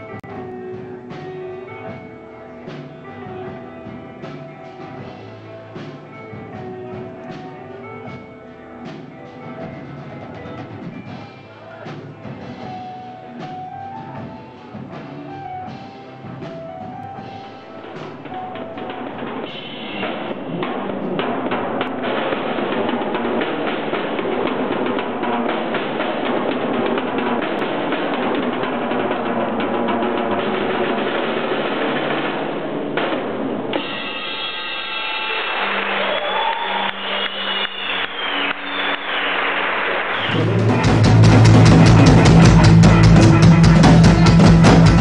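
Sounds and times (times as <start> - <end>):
drum kit rolls and fills: 0.0 - 45.0
pitched instrument notes: 40.1 - 45.0.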